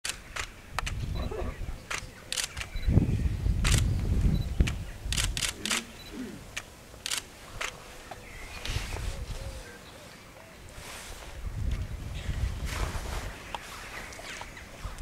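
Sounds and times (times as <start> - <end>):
camera shutters clicking: 1.9 - 2.8, 3.6 - 3.9, 4.7 - 5.9, 6.5 - 7.8.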